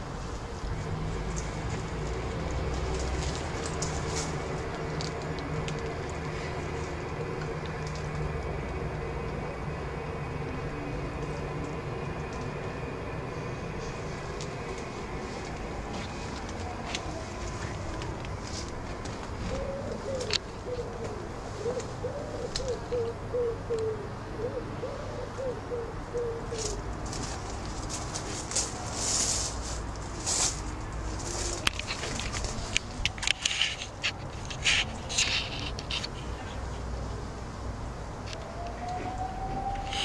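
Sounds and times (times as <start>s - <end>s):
rustling of leaves and twigs: 0.0s - 9.3s, 13.3s - 23.0s, 26.5s - 36.9s, 38.3s - 40.0s
pigeon cooing: 19.4s - 26.9s, 38.4s - 40.0s.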